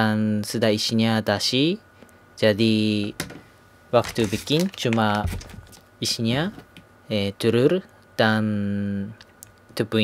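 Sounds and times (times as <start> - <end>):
man speaking: 2.4 - 3.2, 3.9 - 9.2, 9.8 - 10.0
plastic bag crinkling: 4.0 - 5.8.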